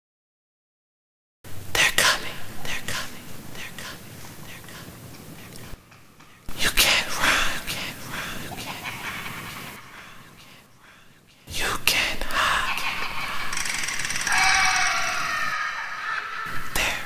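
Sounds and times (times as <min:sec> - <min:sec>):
person whispering: 0:01.7 - 0:05.8, 0:06.4 - 0:08.9, 0:09.6 - 0:13.5, 0:16.5 - 0:17.0.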